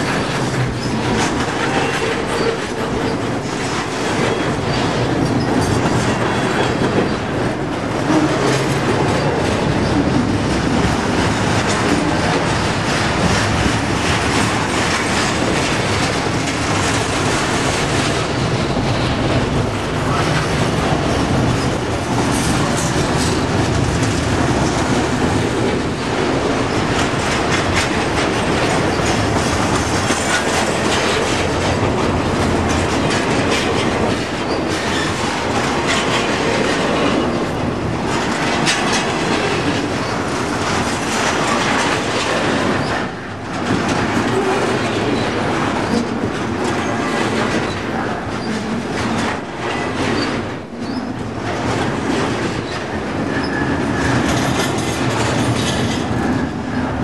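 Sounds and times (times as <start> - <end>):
train wheels on rails: 0.0 - 57.0
wheels clicking over rail joints: 0.0 - 57.0.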